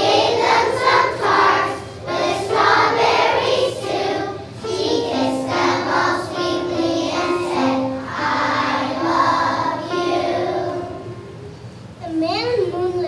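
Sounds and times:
children singing: 0:00.0 - 0:11.2.

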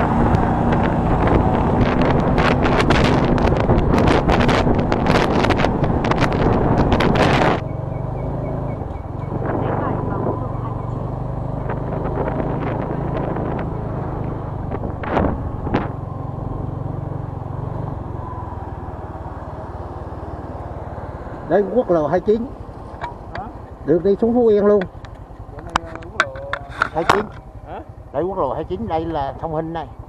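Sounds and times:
wind rush on microphone: 0:00.0 - 0:08.1, 0:08.7 - 0:18.8
motorcycle engine idling: 0:22.4 - 0:30.0.

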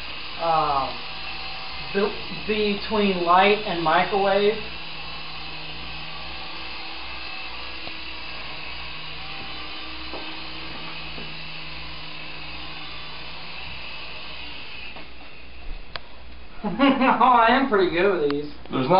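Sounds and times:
small rotor motors whirring: 0:00.0 - 0:18.9.

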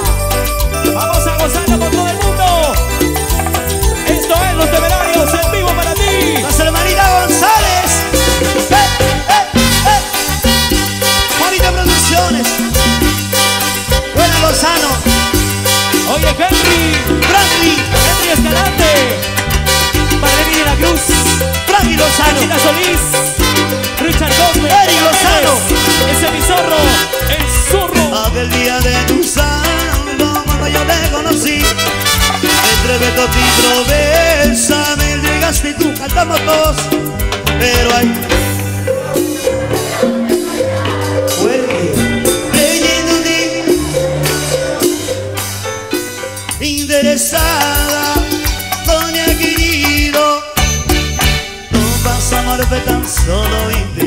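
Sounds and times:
band playing dance music: 0:00.0 - 0:54.0
electric bass line: 0:00.0 - 0:54.0
hand drums and percussion: 0:00.0 - 0:54.0
trumpets and trombone melody: 0:00.0 - 0:54.0.

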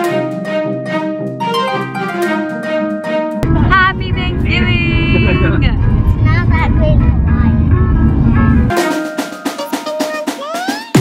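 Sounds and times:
car road noise rumble: 0:03.4 - 0:08.7.

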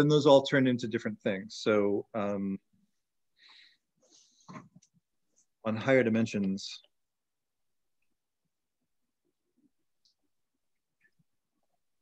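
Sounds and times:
man breathing faintly: 0:03.4 - 0:04.7.

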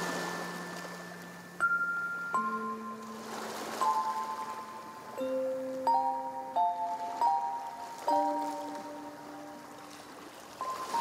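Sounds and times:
sea wave washing: 0:00.0 - 0:02.2, 0:02.9 - 0:05.2, 0:06.8 - 0:11.0
music box lullaby: 0:00.0 - 0:11.0.

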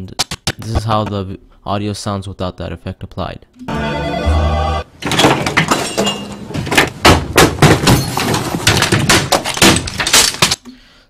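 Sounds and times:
objects crashing and smashing: 0:05.0 - 0:10.6
breaking glass clatter: 0:05.1 - 0:06.4, 0:07.6 - 0:10.6.

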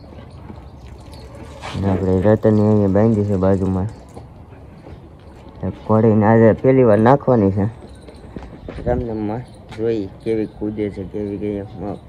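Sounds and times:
low background noise: 0:00.0 - 0:12.0
man talking: 0:01.6 - 0:04.0, 0:08.8 - 0:12.0.

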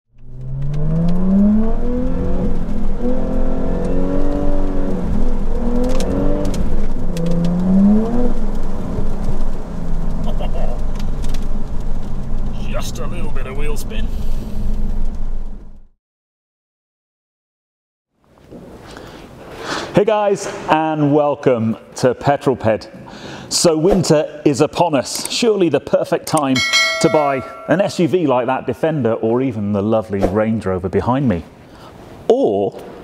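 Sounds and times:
car engine accelerating: 0:00.1 - 0:13.6.

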